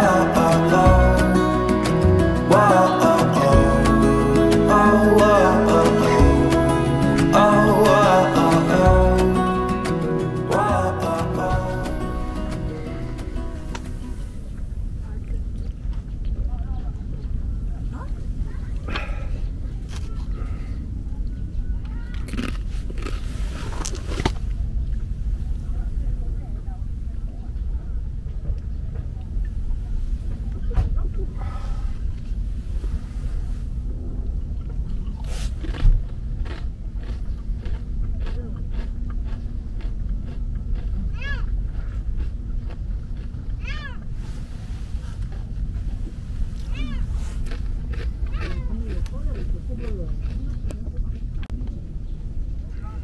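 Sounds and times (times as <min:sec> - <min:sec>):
steady low rumble: 0:00.0 - 0:53.0.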